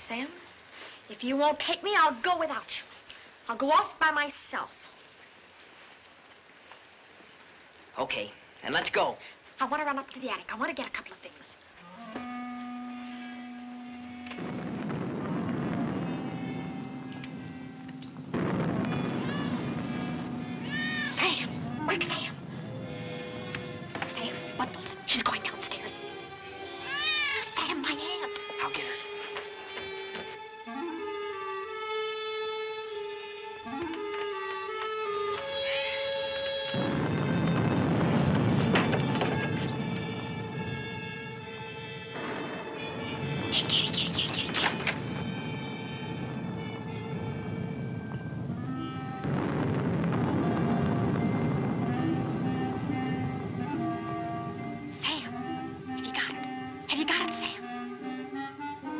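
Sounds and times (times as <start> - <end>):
held string notes: 11.8 - 58.9
tense orchestral music: 12.0 - 58.9
cat meowing: 18.9 - 21.7, 26.7 - 27.6.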